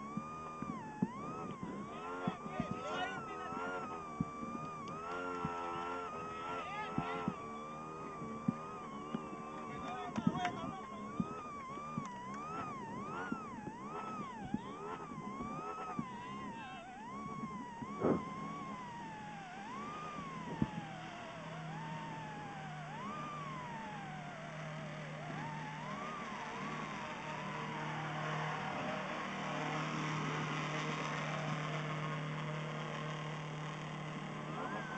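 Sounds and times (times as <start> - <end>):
low engine hum: 0.0 - 34.9
siren wailing: 0.0 - 34.9.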